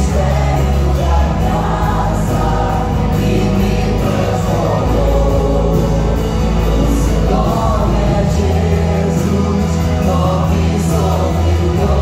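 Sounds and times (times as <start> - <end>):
band playing guitars and bass: 0.0 - 12.0
group singing gospel song: 0.0 - 12.0.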